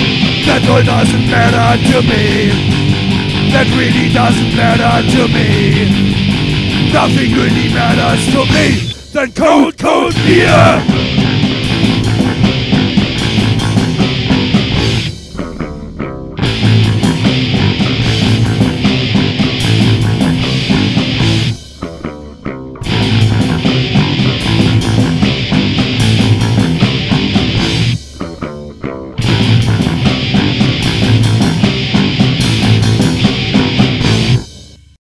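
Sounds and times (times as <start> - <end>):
electric guitar: 0.0 - 9.2, 10.1 - 34.9
bass: 0.0 - 35.0
drums: 0.0 - 35.0.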